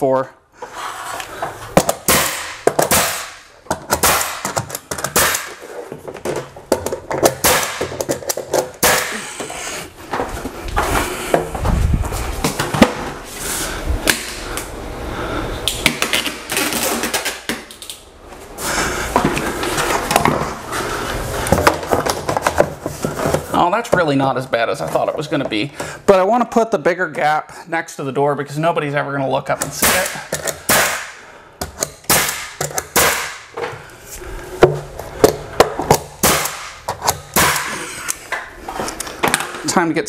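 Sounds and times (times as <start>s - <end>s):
nail gun firing: 1.9s - 5.6s, 7.3s - 8.1s, 29.8s - 31.2s, 31.8s - 33.5s, 36.2s - 37.8s.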